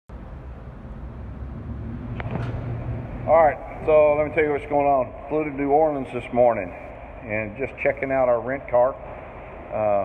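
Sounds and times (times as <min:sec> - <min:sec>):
parking garage low rumble: 0:00.1 - 0:10.0.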